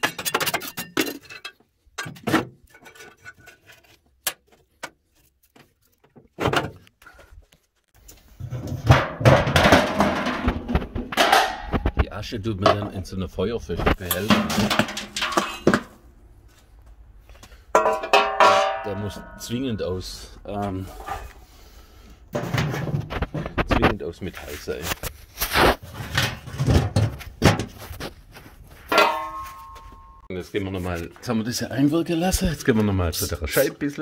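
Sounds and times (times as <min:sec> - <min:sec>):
metal bucket clanking: 0:00.0 - 0:03.8, 0:08.4 - 0:12.0, 0:13.8 - 0:16.0, 0:17.7 - 0:20.2, 0:22.3 - 0:23.7, 0:28.9 - 0:30.3
ash pan scraping metal bucket: 0:08.4 - 0:11.9, 0:14.0 - 0:16.0, 0:20.8 - 0:23.7
sharp metal knocks: 0:17.8 - 0:19.8.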